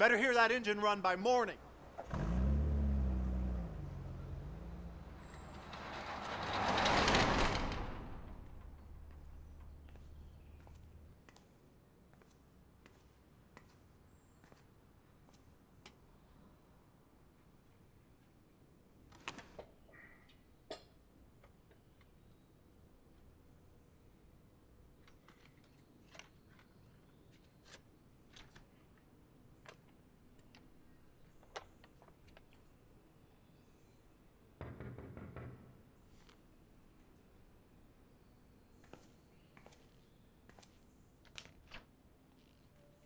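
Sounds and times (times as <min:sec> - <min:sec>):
vehicle engine humming: 0:01.7 - 0:11.0.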